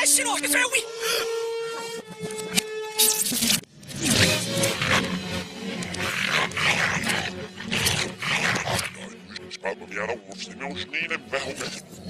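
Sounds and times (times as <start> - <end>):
reversed dogs snarling and growling: 3.9 - 12.0.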